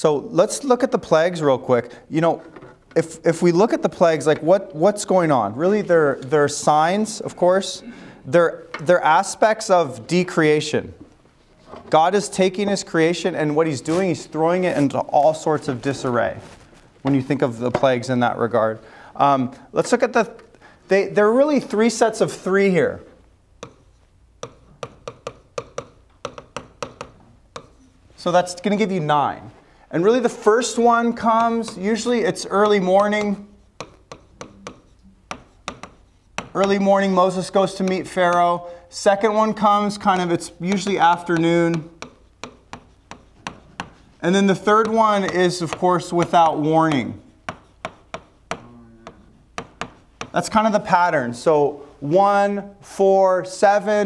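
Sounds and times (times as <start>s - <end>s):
stylus tapping on glass screen: 23.6s - 27.8s, 33.8s - 36.8s, 41.8s - 44.0s.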